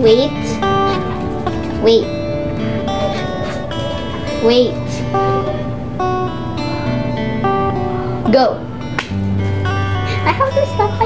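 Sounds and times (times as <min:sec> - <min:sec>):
guitar plucking single notes: 0:00.0 - 0:11.0.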